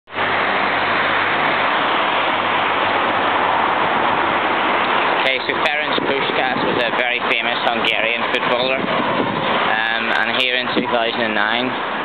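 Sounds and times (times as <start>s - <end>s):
loud steady rushing noise: 0.1s - 12.0s.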